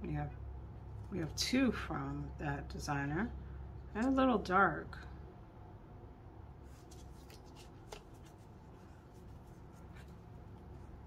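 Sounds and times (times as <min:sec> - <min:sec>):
paper sticker sheets crinkling: 0:06.7 - 0:10.9.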